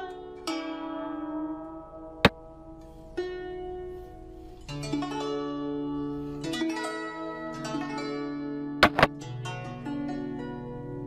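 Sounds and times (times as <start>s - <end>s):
plucked string music: 0.0s - 11.0s
game piece move click: 8.8s - 9.1s.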